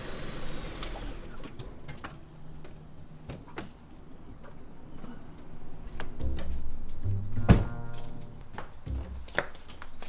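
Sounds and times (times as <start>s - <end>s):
background music: 6.2s - 9.6s.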